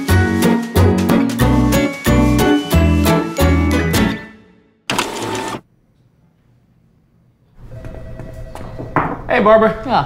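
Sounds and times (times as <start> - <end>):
upbeat jingle music: 0.0 - 4.4
inkjet printer whirr: 4.9 - 5.6.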